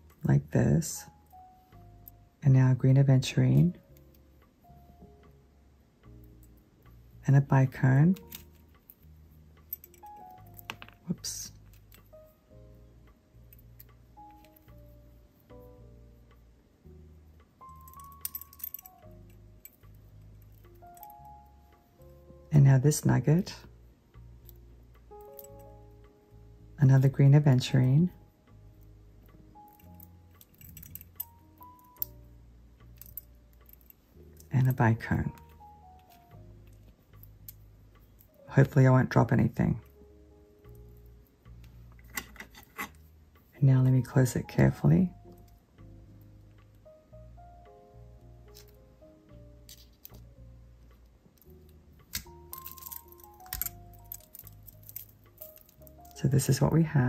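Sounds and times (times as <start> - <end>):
soft background music: 0.0 - 57.0
beads and pliers clicking: 8.1 - 12.3, 17.4 - 22.2, 24.4 - 26.1, 28.8 - 38.4, 40.7 - 43.5, 48.5 - 48.8, 49.6 - 56.7
beads knocking together: 8.2 - 12.3, 50.9 - 56.3.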